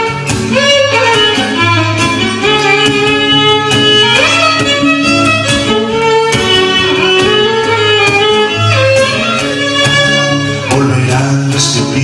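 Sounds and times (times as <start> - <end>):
violin melody: 0.0 - 11.6
acoustic guitars strumming: 0.0 - 12.0.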